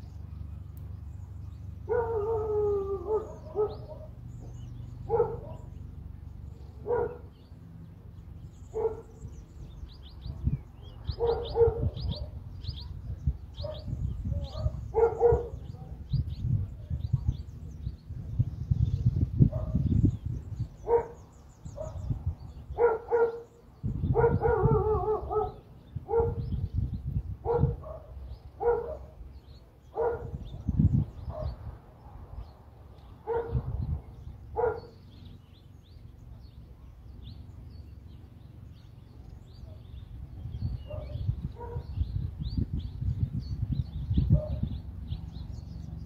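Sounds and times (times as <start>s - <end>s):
low gusty rumble: 0.0s - 46.0s
small birds chirping: 0.0s - 46.0s
dog barking: 1.9s - 2.5s, 3.1s - 4.2s, 5.1s - 5.7s, 6.8s - 7.3s, 8.7s - 9.1s, 11.2s - 12.4s, 13.6s - 16.0s, 20.9s - 21.2s, 22.8s - 23.5s, 24.1s - 26.4s, 27.4s - 29.1s, 30.0s - 30.4s, 33.2s - 33.7s, 34.6s - 35.0s, 40.9s - 41.9s.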